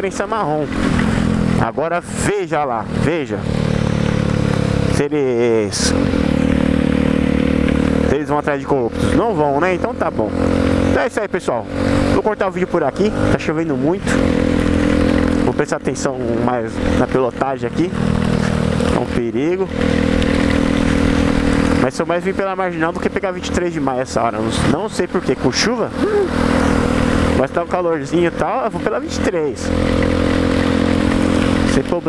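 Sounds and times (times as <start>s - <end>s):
motorcycle engine cruising: 0.0s - 32.0s.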